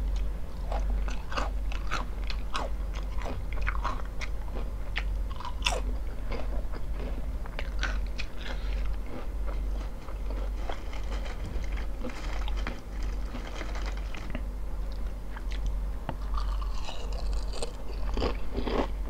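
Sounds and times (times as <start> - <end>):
low steady hum: 0.0 - 19.0
chewing crunchy chips: 0.2 - 19.0.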